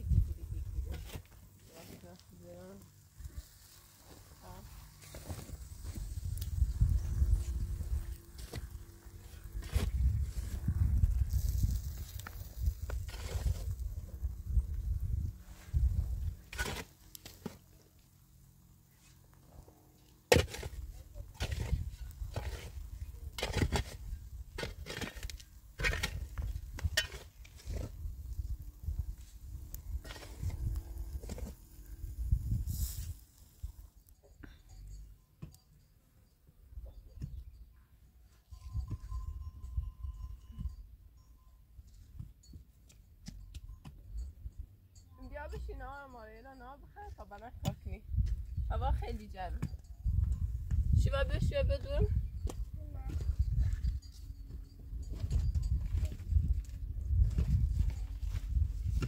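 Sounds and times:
wind rumble on microphone: 0.0s - 1.6s, 4.4s - 16.6s, 20.6s - 33.9s, 38.5s - 41.3s, 47.5s - 59.0s
pickaxe striking stony soil: 16.5s - 17.6s, 20.3s - 28.4s.

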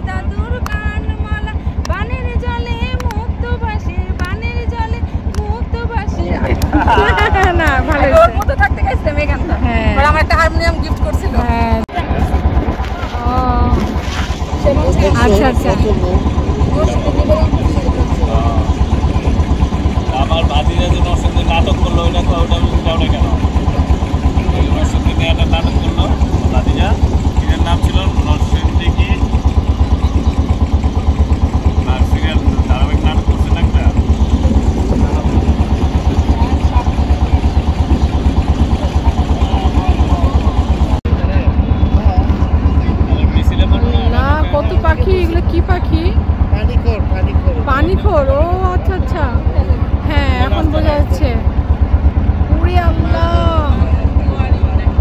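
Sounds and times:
people talking: 0.0s - 29.4s, 31.8s - 37.7s, 38.6s - 51.5s, 52.5s - 55.0s
boat engine chugging: 0.0s - 55.0s.

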